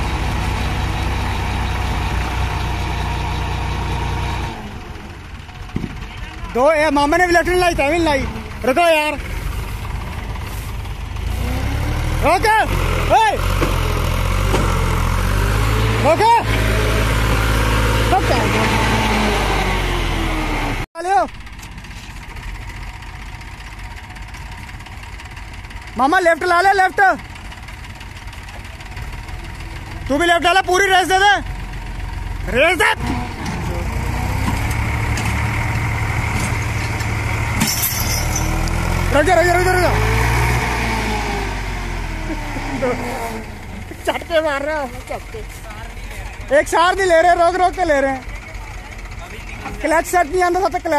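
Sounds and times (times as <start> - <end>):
tractor diesel engine under load: 0.0 - 50.9.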